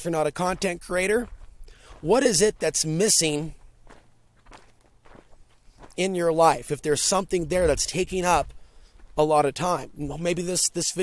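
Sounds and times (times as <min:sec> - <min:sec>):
faint footsteps: 0:00.0 - 0:10.6.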